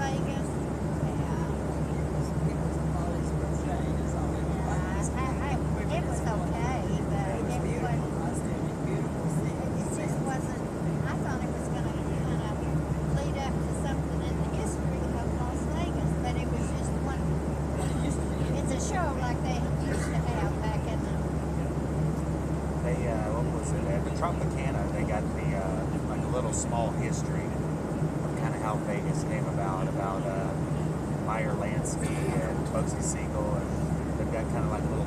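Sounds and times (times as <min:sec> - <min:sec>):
airliner cabin drone: 0:00.0 - 0:35.0
indistinct voices talking: 0:00.0 - 0:35.0.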